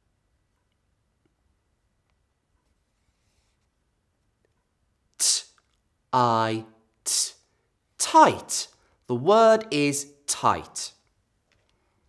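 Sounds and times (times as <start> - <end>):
man saying breathy t sound: 5.2 - 5.6, 6.2 - 7.4, 8.0 - 8.8.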